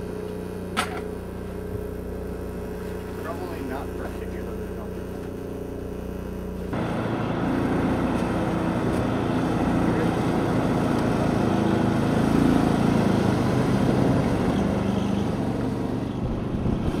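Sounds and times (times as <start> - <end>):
engine hum: 0.0 - 17.0
vehicles driving on road: 6.7 - 17.0
wind noise: 16.2 - 17.0.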